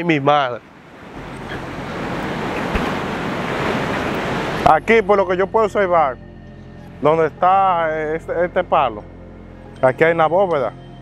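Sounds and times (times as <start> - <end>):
sea surf rushing: 0.0 - 5.1.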